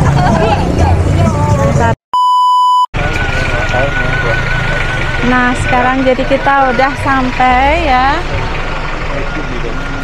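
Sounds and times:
high test-tone beep: 2.2s - 2.9s.

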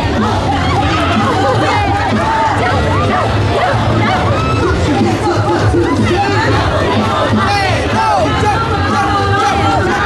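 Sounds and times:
crowd calling out and chattering: 0.0s - 10.0s
parade music from loudspeakers: 0.0s - 10.0s.

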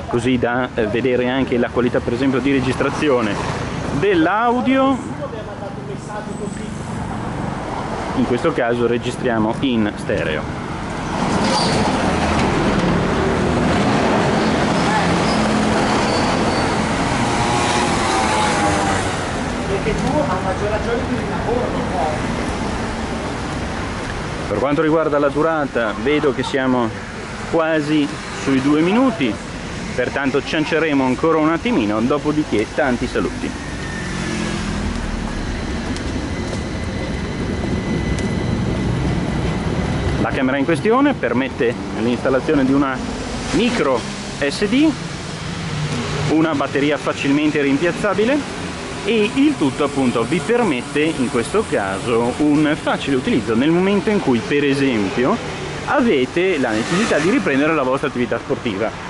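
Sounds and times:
vehicle engine and tyre rumble: 0.0s - 59.0s
truck driving past: 10.4s - 24.6s, 26.8s - 58.2s.

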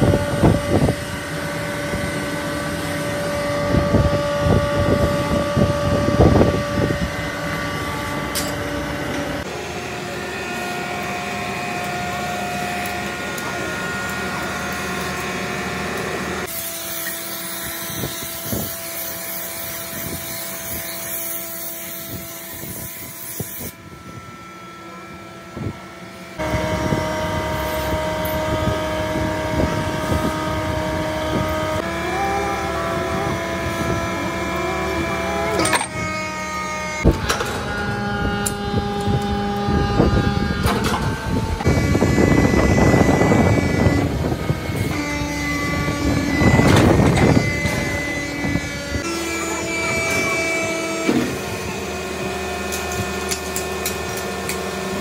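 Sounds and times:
machine mechanical hum: 0.0s - 55.0s.

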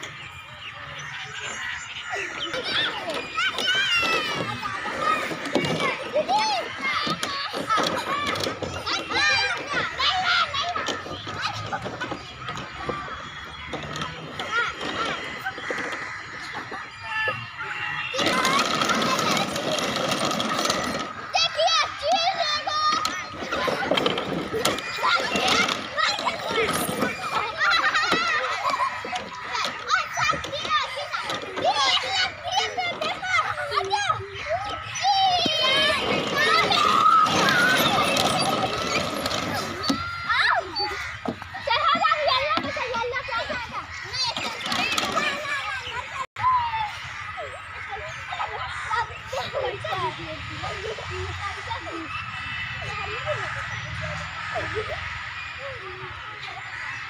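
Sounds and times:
children chattering and calling out: 0.0s - 57.0s.

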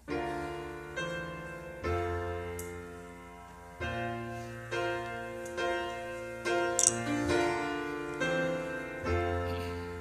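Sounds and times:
piano chords ringing: 0.0s - 10.0s
sharp click: 6.8s - 7.0s.

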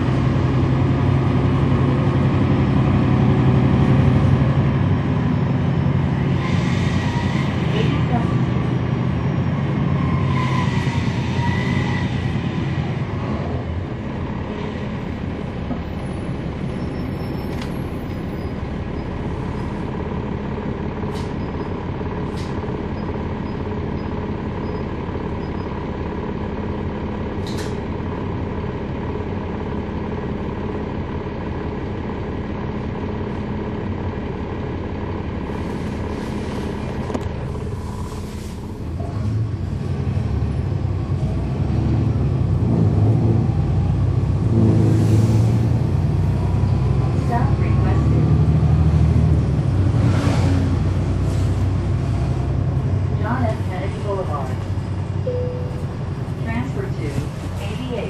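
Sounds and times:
bus diesel engine running: 0.0s - 58.0s.

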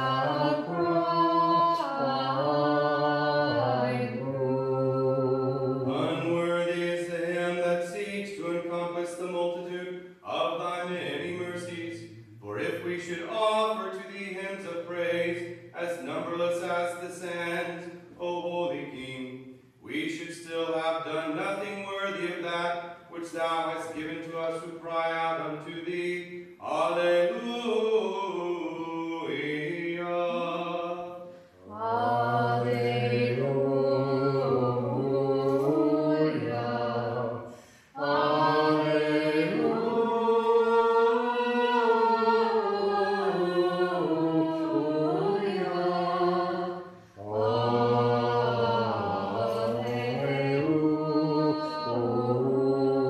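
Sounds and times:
man chanting: 5.9s - 31.8s.

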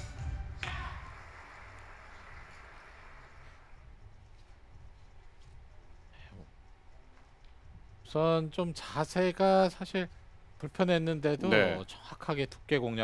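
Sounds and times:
low steady hum: 0.0s - 13.0s
soft hiss: 1.0s - 13.0s
faint voice: 11.4s - 11.8s.

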